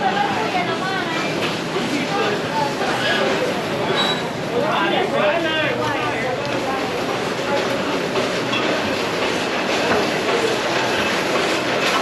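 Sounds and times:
faint voices: 0:00.0 - 0:12.0
loud street din: 0:00.0 - 0:12.0.

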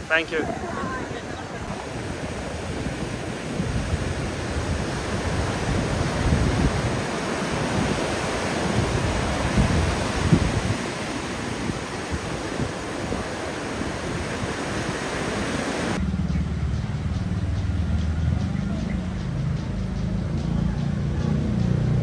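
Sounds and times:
waves breaking: 0:00.0 - 0:16.0
wind rumble on microphone: 0:00.0 - 0:16.0.

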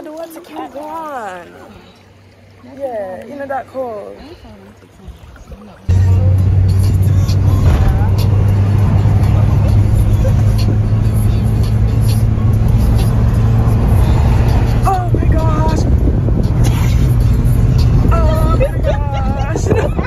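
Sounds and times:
voices: 0:00.0 - 0:16.1, 0:16.7 - 0:20.0
car engine and road drone: 0:05.9 - 0:20.0
tyre noise hum: 0:05.9 - 0:20.0.

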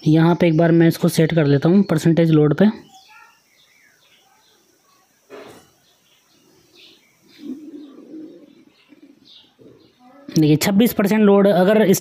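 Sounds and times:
faint high bird chirps: 0:00.0 - 0:10.5
bird cooing: 0:06.5 - 0:10.3.

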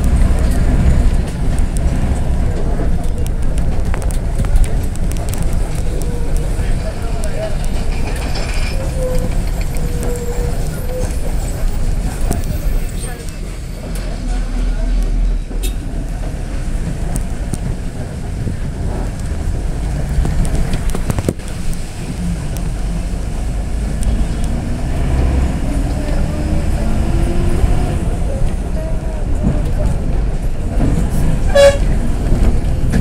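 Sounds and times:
wind rumble on microphone: 0:00.0 - 0:13.0, 0:15.0 - 0:33.0.

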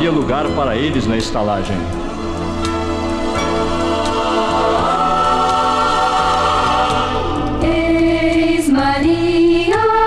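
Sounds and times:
choir singing sustained notes: 0:02.1 - 0:10.0.

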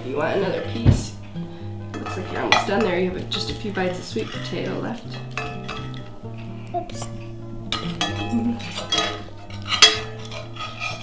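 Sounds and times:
background music: 0:00.0 - 0:11.0
cutlery clinking against a plate: 0:01.9 - 0:06.2, 0:07.1 - 0:11.0.

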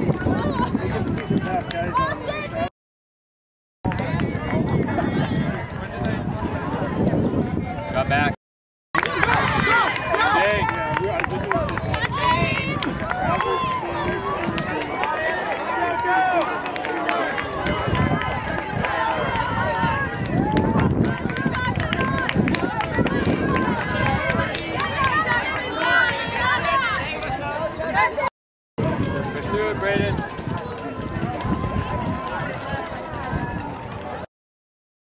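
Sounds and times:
spectators calling out and talking: 0:00.0 - 0:02.7, 0:03.9 - 0:08.4, 0:09.0 - 0:34.3.

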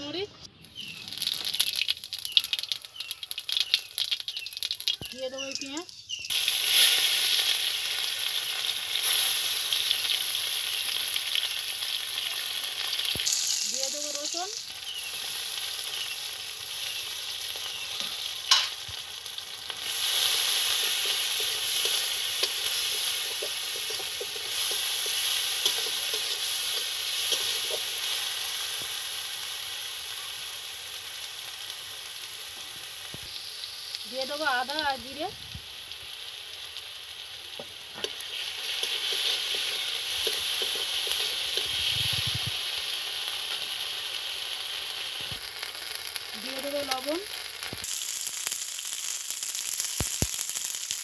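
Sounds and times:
food sizzling in hot oil: 0:00.0 - 0:51.0.

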